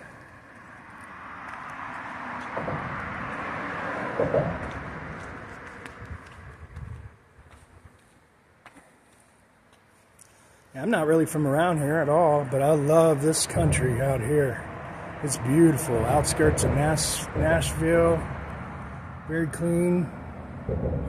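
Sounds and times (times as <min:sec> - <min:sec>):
vehicle tyre noise passing: 0:00.0 - 0:08.3, 0:10.9 - 0:21.0.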